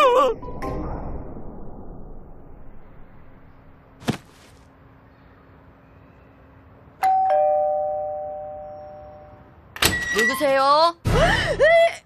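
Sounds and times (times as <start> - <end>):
two-tone doorbell chime: 7.0 - 9.4.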